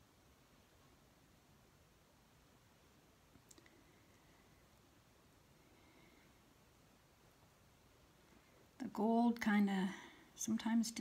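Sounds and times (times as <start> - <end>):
faint clicks: 3.3 - 3.8.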